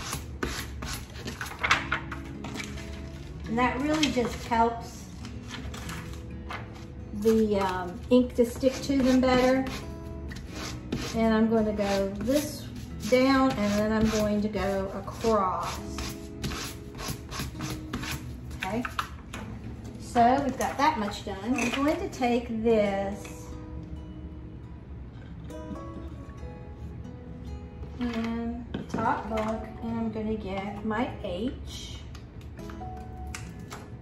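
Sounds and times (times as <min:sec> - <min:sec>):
sandpaper scraping strokes: 0:10.4 - 0:11.2.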